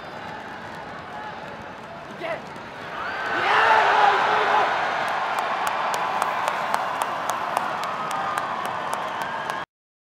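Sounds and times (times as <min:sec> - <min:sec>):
arena crowd applauding: 0:00.0 - 0:09.7.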